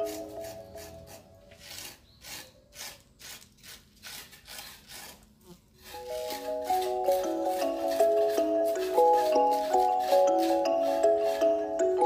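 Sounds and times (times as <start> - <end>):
music: 0.0 - 1.2, 6.0 - 12.0
hand tool scraping cement: 0.0 - 12.0.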